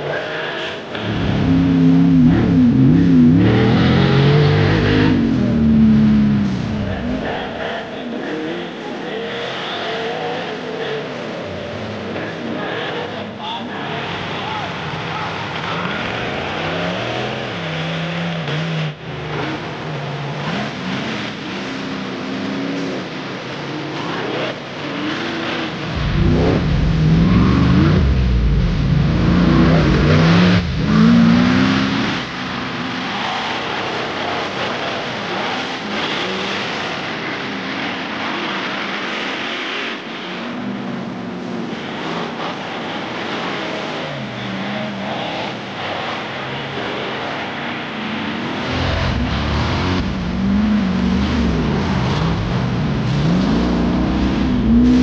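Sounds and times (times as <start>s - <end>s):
buggy engines revving: 0.0s - 55.0s.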